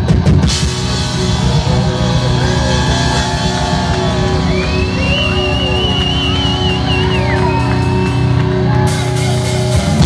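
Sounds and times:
bass guitar: 0.0s - 10.0s
drums: 0.0s - 10.0s
electric guitar: 0.0s - 10.0s.

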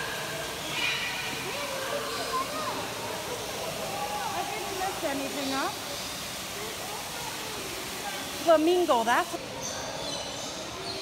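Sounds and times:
rushing water: 0.0s - 11.0s.

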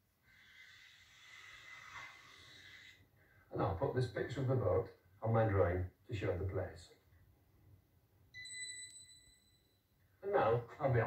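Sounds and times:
high steady ding tone: 8.4s - 9.8s.

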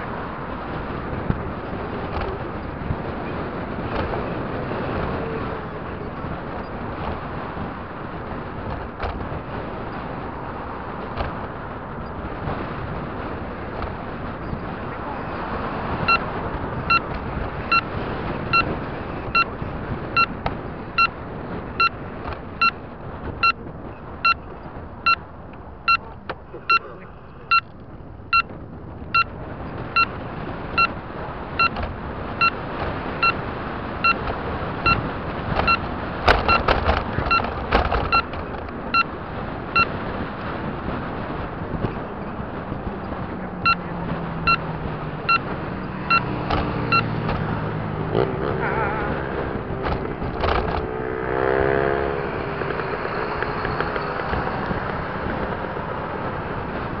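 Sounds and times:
road and wind noise in car: 0.0s - 57.0s
turn signal beeping: 13.7s - 57.0s
knocks and rattles: 35.5s - 38.6s, 49.8s - 50.9s.

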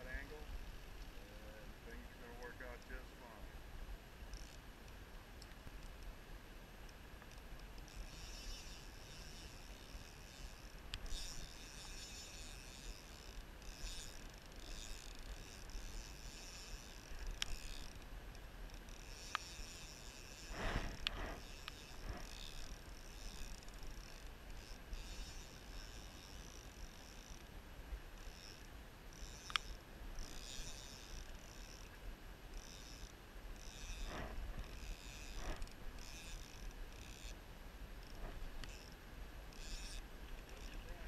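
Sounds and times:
river noise: 0.0s - 41.0s
scraping rustle: 19.2s - 23.6s, 33.7s - 36.5s
sharp clicks: 29.2s - 29.7s.

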